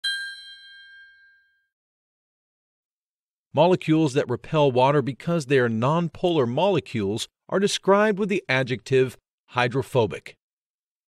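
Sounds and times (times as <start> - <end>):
high chime ringing: 0.0 - 1.7.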